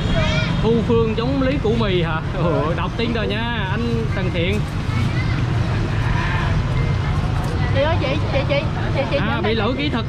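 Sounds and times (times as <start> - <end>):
busy street traffic rumble: 0.0 - 10.0
faint voices: 2.2 - 10.0.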